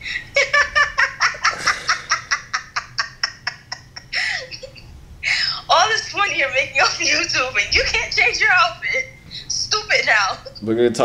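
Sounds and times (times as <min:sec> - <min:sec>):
person laughing: 0:00.1 - 0:04.8.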